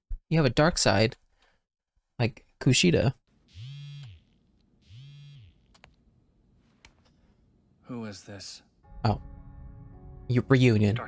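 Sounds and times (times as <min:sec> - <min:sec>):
mobile phone buzzing: 0:03.5 - 0:05.8.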